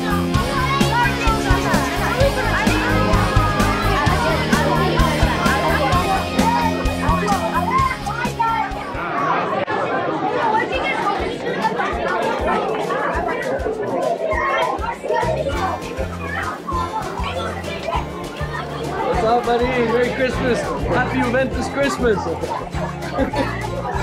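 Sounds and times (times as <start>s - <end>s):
background music with bass line: 0.0s - 8.5s
children talking and calling out: 0.0s - 24.0s.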